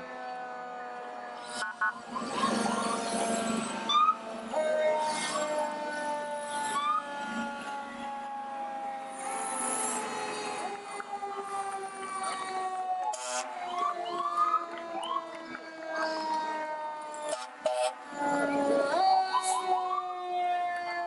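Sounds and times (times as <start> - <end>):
fire engine siren: 0.0 - 21.0
rising siren whoops: 0.0 - 21.0.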